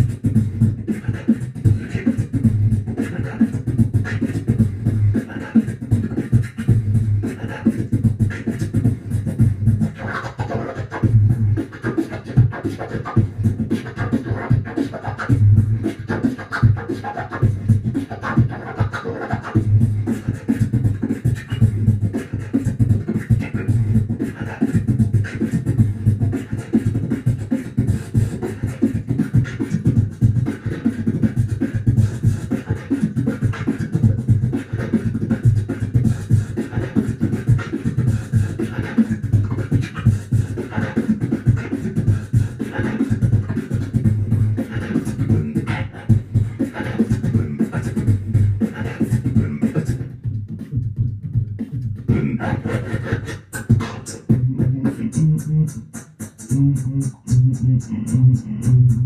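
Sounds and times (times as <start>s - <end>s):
person beatboxing: 0.0s - 59.0s.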